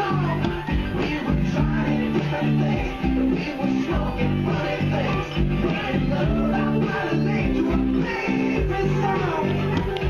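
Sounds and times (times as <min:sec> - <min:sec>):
electric bass guitar plucked: 0:00.0 - 0:10.0
music playing: 0:00.0 - 0:10.0.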